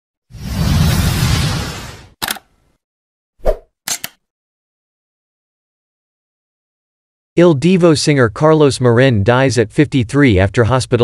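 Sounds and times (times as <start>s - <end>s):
quick double click: 3.9s - 4.2s.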